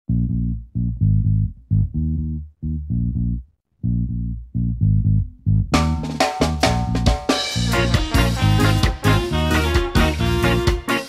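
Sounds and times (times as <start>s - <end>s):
bass guitar riff: 0.1s - 11.0s
band with drums and cymbals: 5.8s - 11.0s.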